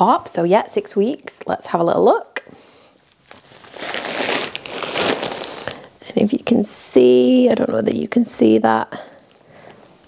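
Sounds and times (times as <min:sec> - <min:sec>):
plastic bag crinkling: 0:03.0 - 0:06.0.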